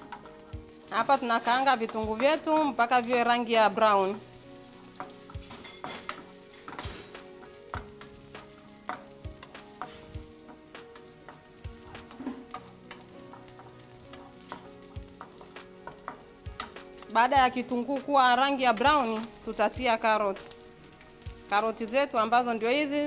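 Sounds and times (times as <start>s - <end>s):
wooden spatula scraping a pan: 0.0s - 17.1s
onions sizzling in a frying pan: 0.0s - 23.0s.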